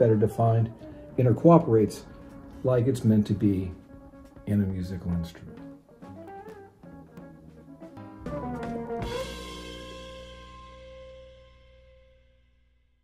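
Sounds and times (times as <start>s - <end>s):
electric guitar notes and chord: 5.5s - 12.4s.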